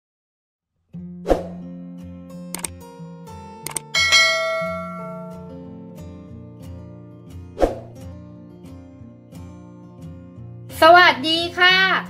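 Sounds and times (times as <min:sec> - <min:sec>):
acoustic guitar music: 0:01.0 - 0:10.7
clicks: 0:03.7 - 0:03.9
notification bell ding: 0:03.8 - 0:05.5.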